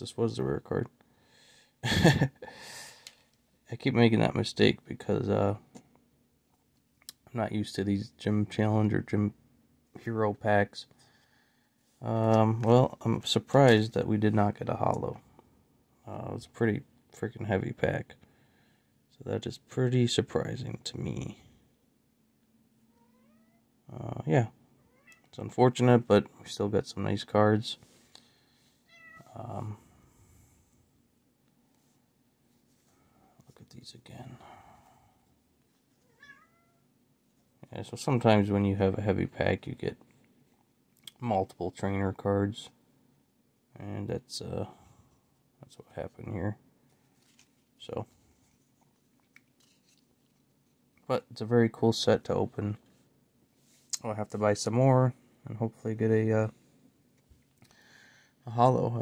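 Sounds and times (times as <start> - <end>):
trading cards rustling: 47.0 - 47.8, 48.4 - 50.8.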